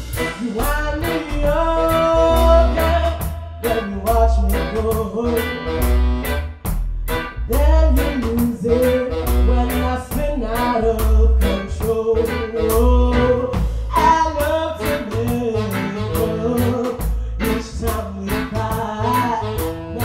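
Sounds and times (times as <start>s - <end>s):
blues band playing: 0.0s - 20.0s.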